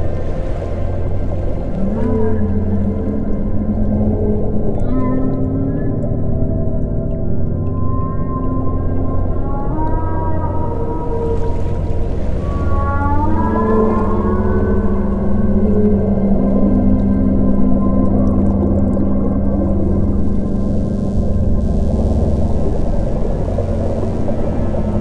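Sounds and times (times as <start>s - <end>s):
low ambient music drone: 0.0s - 25.0s
whale song calls: 0.0s - 25.0s.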